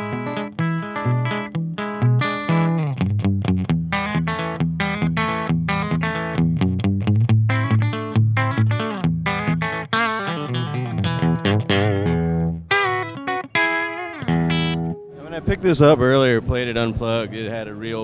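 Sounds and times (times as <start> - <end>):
electric guitar picked notes: 0.0 - 18.0.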